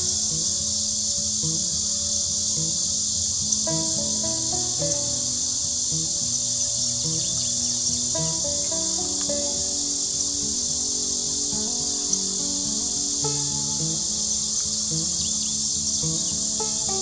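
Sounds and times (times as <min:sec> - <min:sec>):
insect chorus drone: 0:00.0 - 0:17.0
low-note background music: 0:00.0 - 0:17.0.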